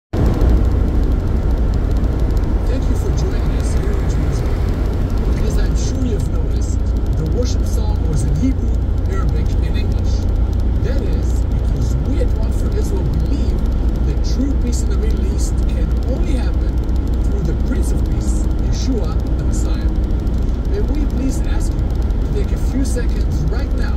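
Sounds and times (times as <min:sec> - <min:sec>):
car cabin road and engine rumble: 0:00.1 - 0:23.9.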